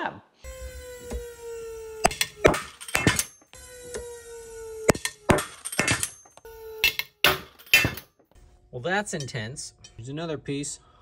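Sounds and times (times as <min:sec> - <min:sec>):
machine whine: 0:00.5 - 0:09.0
clattering metal: 0:02.0 - 0:03.5, 0:04.9 - 0:08.2.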